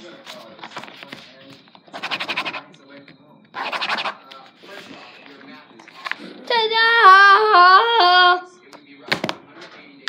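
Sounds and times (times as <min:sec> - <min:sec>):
pen scribbling on paper: 0:01.9 - 0:02.7, 0:03.6 - 0:04.2.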